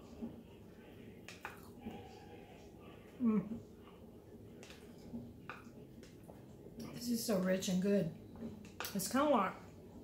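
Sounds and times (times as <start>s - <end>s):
quiet chewing and mouth sounds: 0.0s - 7.0s.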